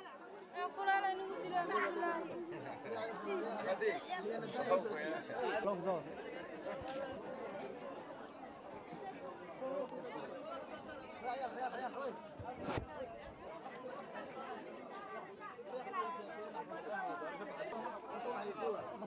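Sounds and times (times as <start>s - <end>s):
market crowd chatter: 0.0s - 19.0s.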